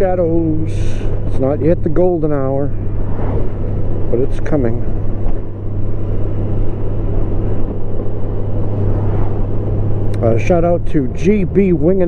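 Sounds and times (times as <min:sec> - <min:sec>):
motorcycle engine humming: 0:00.0 - 0:12.0
road noise: 0:00.0 - 0:12.0
wind: 0:00.0 - 0:12.0.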